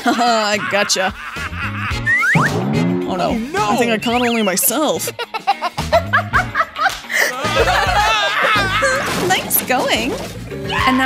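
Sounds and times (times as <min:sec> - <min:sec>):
woman laughing: 0:00.0 - 0:02.2, 0:03.6 - 0:10.0
background music: 0:00.0 - 0:11.0.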